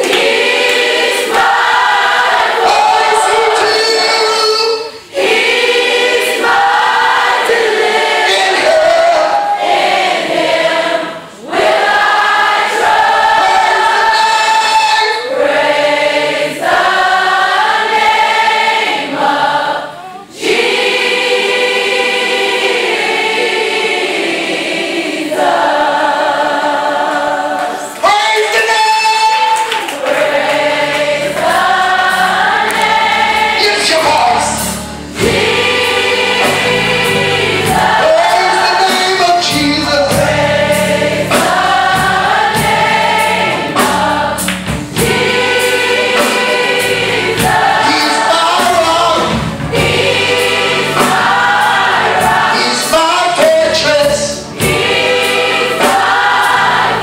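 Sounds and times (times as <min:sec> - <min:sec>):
crowd singing a gospel song: 0:00.0 - 0:57.0.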